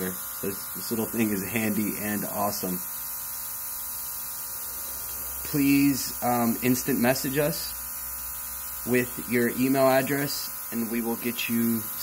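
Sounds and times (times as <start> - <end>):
air hissing: 0.0 - 11.2
spray gun motor humming: 0.0 - 12.0.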